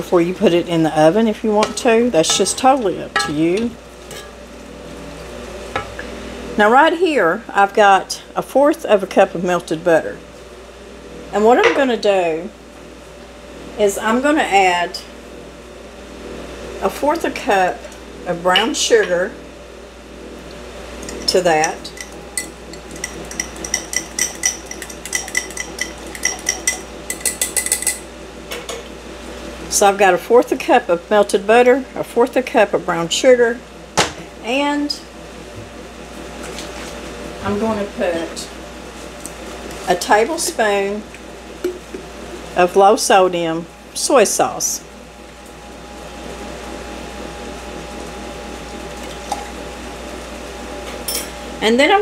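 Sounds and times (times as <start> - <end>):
air fryer fan whirring: 0.0 - 52.0
utensil clinking against dish: 1.6 - 4.4, 21.0 - 28.0.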